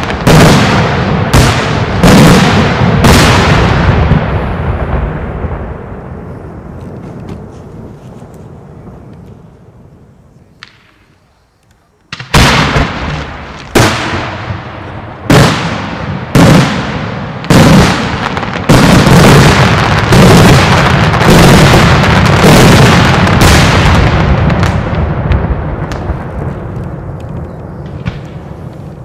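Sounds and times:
firework shells exploding: 0.0 - 7.5, 12.1 - 29.0.

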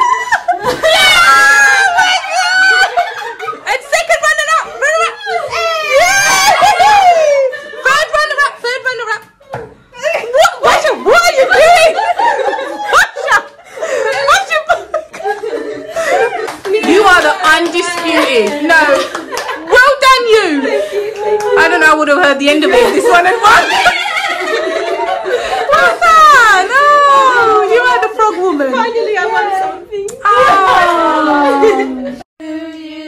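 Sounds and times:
women shrieking and squealing: 0.0 - 3.2, 4.6 - 8.1
women laughing and chattering: 0.0 - 32.2.

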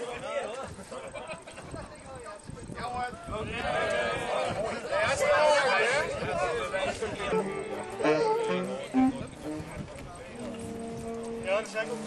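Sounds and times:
people talking outdoors: 0.0 - 12.0
steady held tone: 7.2 - 12.0.

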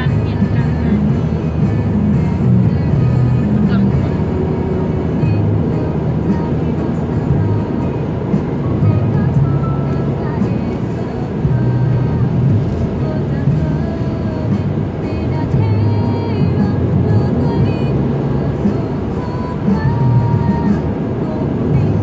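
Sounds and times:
music playing in car: 0.0 - 22.0
road noise: 0.0 - 22.0.

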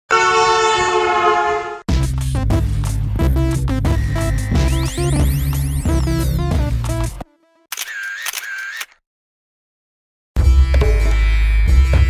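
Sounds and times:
vehicle horn blast: 0.1 - 1.9
electronic music: 1.9 - 7.6.

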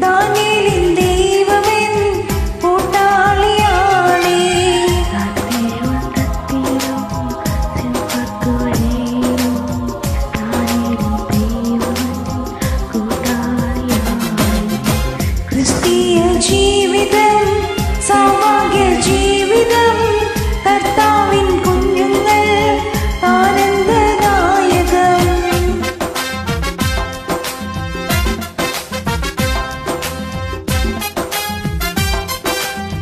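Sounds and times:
woman singing with vibrato: 0.0 - 26.1
karaoke backing track with drums: 0.0 - 33.0.

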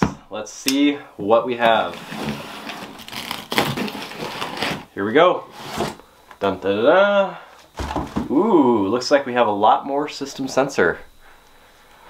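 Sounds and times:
box cutter slitting tape and cardboard: 1.9 - 4.9.

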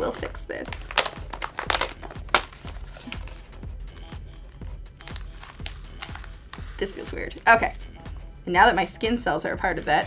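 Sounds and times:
background music: 0.0 - 10.0
vinyl sheet crinkling and crackling: 0.7 - 7.7.

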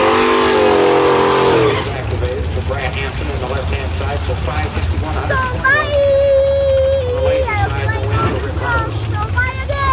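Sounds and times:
race engines idling: 0.0 - 9.9
people talking nearby: 1.8 - 9.9.

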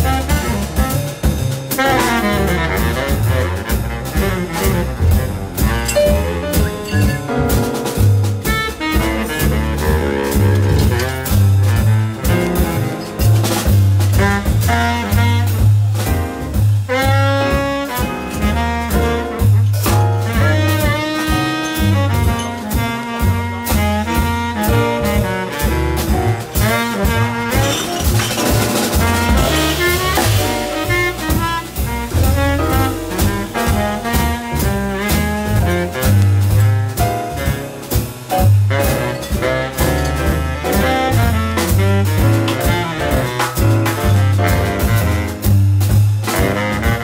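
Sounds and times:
acoustic piano: 0.0 - 47.0
double bass notes: 0.0 - 47.0
drum kit with cymbals: 0.0 - 47.0
saxophone melody: 1.7 - 15.7, 16.9 - 45.6, 46.2 - 47.0
drum kit cymbal strokes: 26.1 - 46.5.

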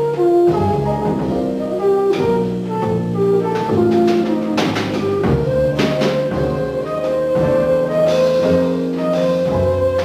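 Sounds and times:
jazz combo playing blues: 0.0 - 10.0.

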